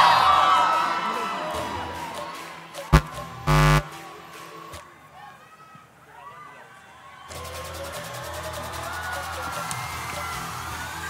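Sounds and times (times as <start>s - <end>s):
electrical buzz through speakers: 3.0s - 3.9s.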